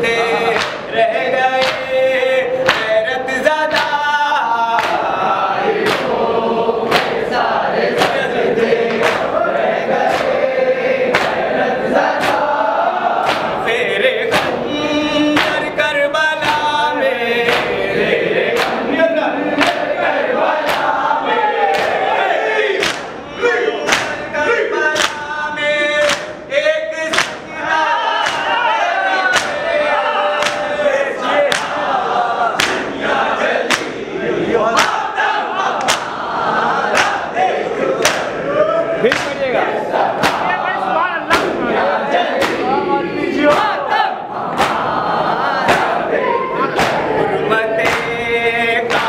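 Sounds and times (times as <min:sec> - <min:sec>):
men chanting in unison: 0:00.0 - 0:49.0
chest beating slaps: 0:00.6 - 0:00.9, 0:01.6 - 0:01.9, 0:02.6 - 0:03.0, 0:04.7 - 0:05.1, 0:05.8 - 0:06.2, 0:06.9 - 0:07.2, 0:07.9 - 0:09.4, 0:11.1 - 0:11.5, 0:12.1 - 0:12.5, 0:13.2 - 0:14.7, 0:15.3 - 0:15.7, 0:16.4 - 0:16.8, 0:17.4 - 0:17.8, 0:18.5 - 0:18.9, 0:19.6 - 0:19.9, 0:20.6 - 0:21.0, 0:21.6 - 0:22.1, 0:22.8 - 0:23.2, 0:23.8 - 0:24.3, 0:26.0 - 0:26.5, 0:27.1 - 0:27.6, 0:28.2 - 0:28.7, 0:29.3 - 0:29.7, 0:30.4 - 0:30.8, 0:31.5 - 0:31.8, 0:32.6 - 0:33.0, 0:33.6 - 0:34.0, 0:34.7 - 0:35.2, 0:35.8 - 0:36.2, 0:38.0 - 0:38.4, 0:39.0 - 0:41.7, 0:42.3 - 0:42.7, 0:43.5 - 0:43.9, 0:44.5 - 0:44.9, 0:45.6 - 0:46.1, 0:46.7 - 0:47.2, 0:47.8 - 0:48.2
hands striking chests: 0:22.8 - 0:23.2, 0:29.3 - 0:29.6, 0:39.1 - 0:39.4, 0:40.2 - 0:40.6, 0:42.4 - 0:42.7.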